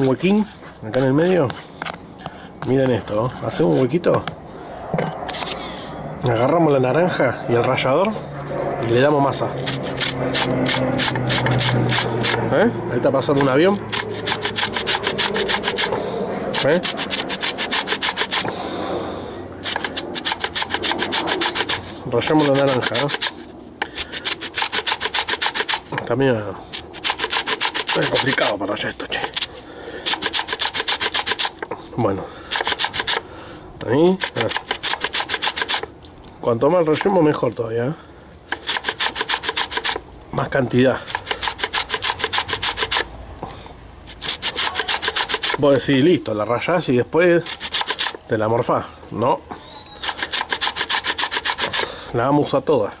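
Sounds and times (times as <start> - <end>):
peel grated on metal grater: 9.4 - 12.4, 13.2 - 18.5, 19.6 - 26.0, 26.7 - 28.6, 29.2 - 31.6, 32.5 - 33.2, 34.1 - 35.9, 38.5 - 40.0, 41.0 - 43.1, 44.1 - 45.7, 47.4 - 48.2, 50.0 - 51.9.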